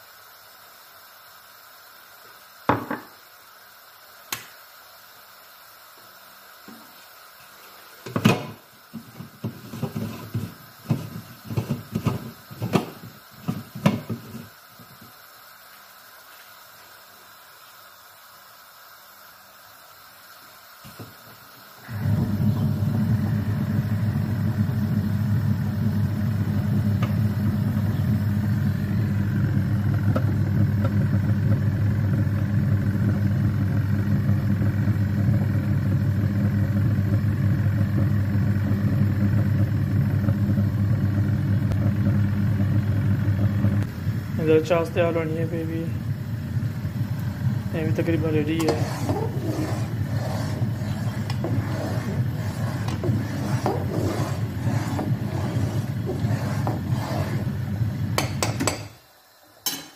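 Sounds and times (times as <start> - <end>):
food processor motor running: 21.8 - 58.9.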